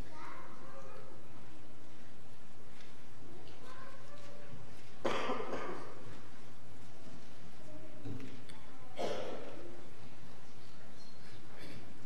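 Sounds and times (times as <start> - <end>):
person coughing: 5.0 - 6.0, 9.0 - 9.5.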